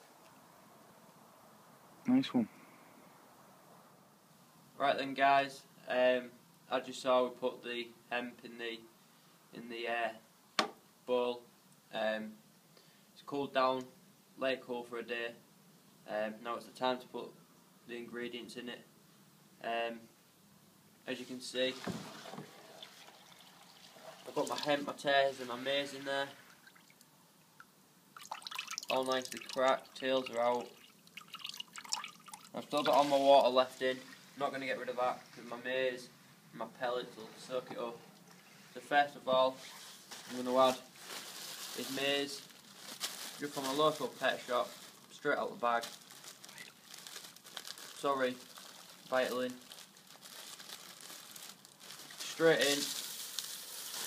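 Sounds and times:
plastic bag crinkling: 39.6 - 54.0.

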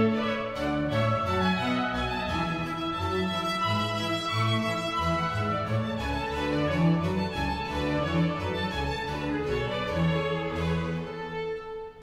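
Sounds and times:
bowed strings playing: 0.0 - 12.0.

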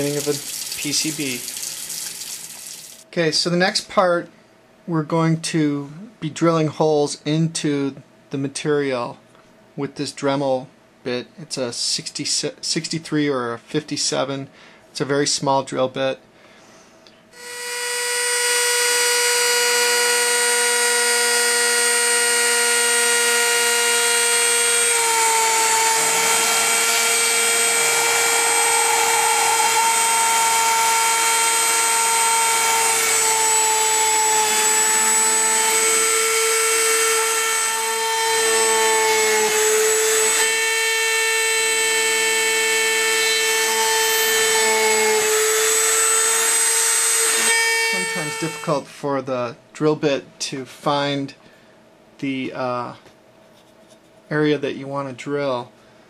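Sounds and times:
rotary tool drilling circuit board: 0.0 - 3.0, 17.4 - 48.8.

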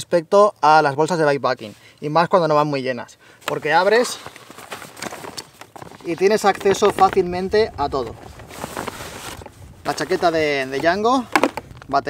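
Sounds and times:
stiff fabric rustling and crinkling: 3.5 - 12.0.

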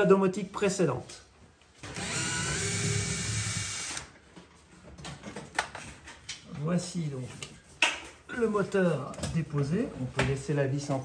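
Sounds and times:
cordless drill running: 1.8 - 4.2.

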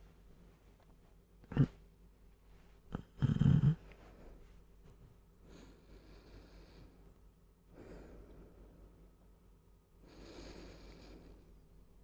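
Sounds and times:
man snorting: 1.5 - 1.8, 2.9 - 3.8.

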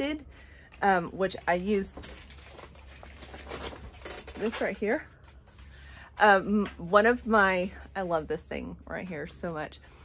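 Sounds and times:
handling rustling: 1.2 - 6.1.

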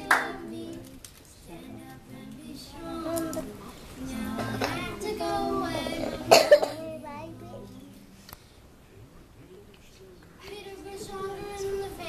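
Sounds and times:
boy singing: 0.0 - 8.2, 10.4 - 12.0
loud cough: 6.2 - 6.8.

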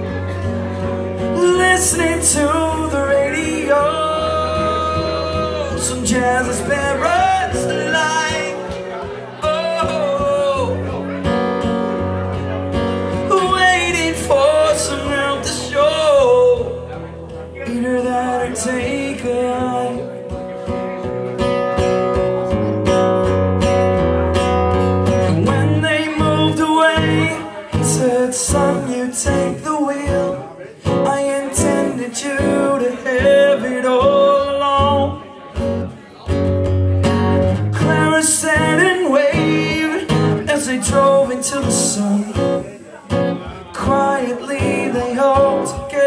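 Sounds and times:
man singing: 0.0 - 11.6, 12.2 - 21.0, 24.8 - 36.4, 37.0 - 46.0
acoustic guitar strumming: 0.0 - 46.0.

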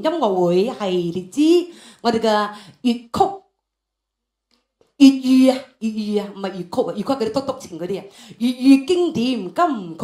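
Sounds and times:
woman speaking into a microphone: 0.0 - 3.4, 5.0 - 10.0.

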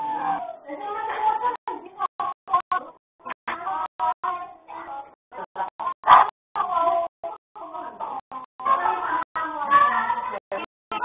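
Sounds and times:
adults and children talking: 0.0 - 11.0.

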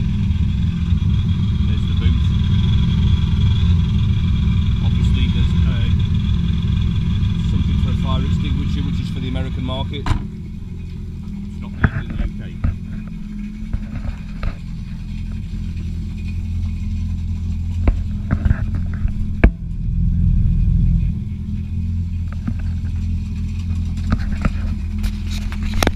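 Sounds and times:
jet ski engine idling: 0.0 - 25.9.

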